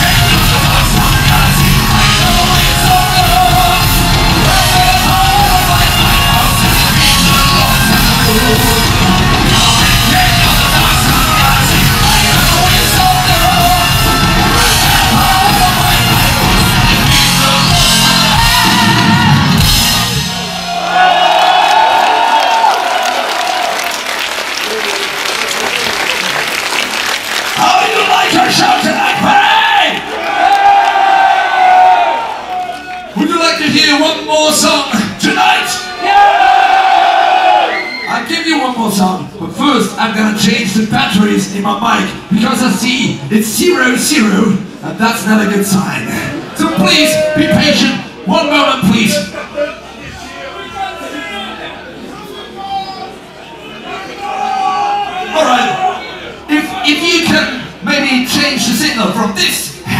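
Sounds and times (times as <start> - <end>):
man singing and shouting: 0.0 - 19.4
metal band playing live: 0.0 - 20.8
crowd noise: 0.0 - 59.9.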